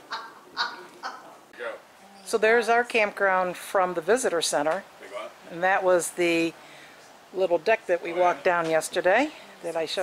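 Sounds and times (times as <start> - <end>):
people talking: 0.7 - 6.6, 7.4 - 10.0.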